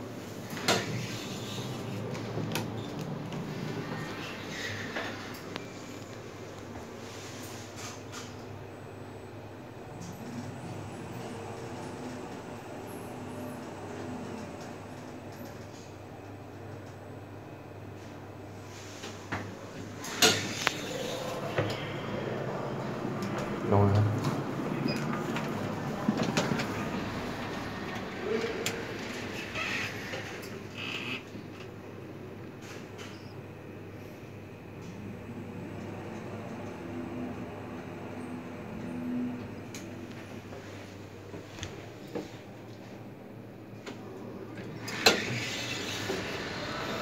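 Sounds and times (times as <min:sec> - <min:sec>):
elevator doors opening: 0:19.0 - 0:33.4, 0:44.0 - 0:47.0
lift door mechanism running: 0:44.7 - 0:47.0.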